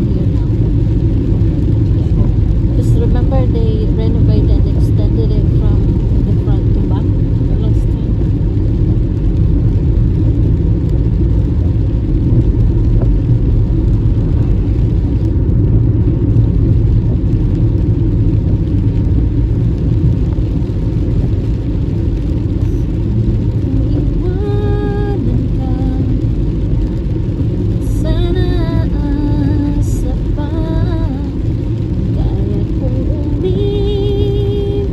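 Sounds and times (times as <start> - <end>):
car driving on wet road: 0.0 - 34.9.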